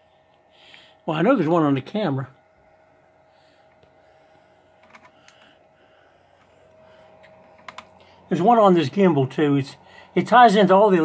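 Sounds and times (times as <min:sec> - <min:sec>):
faint high hum: 0:00.0 - 0:11.0.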